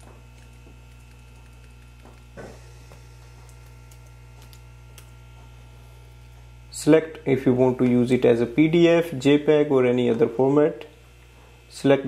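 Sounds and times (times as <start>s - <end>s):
electrical mains hum: 0.0s - 12.0s
man speaking: 6.7s - 11.0s, 11.7s - 12.0s.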